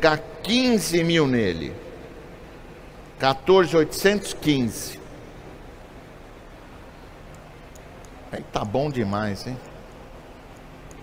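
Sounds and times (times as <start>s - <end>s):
room hiss and hum: 0.0s - 11.0s.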